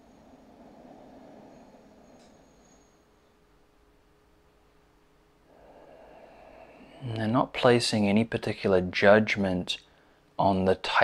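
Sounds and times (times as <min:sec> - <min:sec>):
man breathing in slowly: 0:00.0 - 0:03.0, 0:05.4 - 0:07.0.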